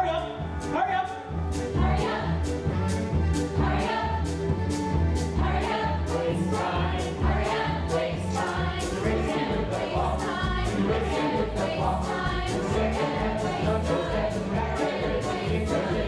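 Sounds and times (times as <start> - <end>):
chorus singing a show tune: 1.7 - 2.6, 3.5 - 4.4, 5.4 - 16.0.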